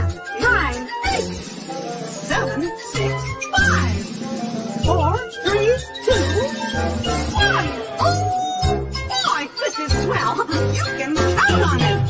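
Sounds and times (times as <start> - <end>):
bouncy children's music: 0.0 - 12.0.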